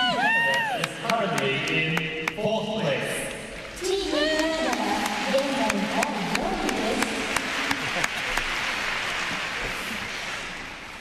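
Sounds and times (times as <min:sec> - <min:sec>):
crowd applauding: 0:00.0 - 0:02.4, 0:04.2 - 0:11.0.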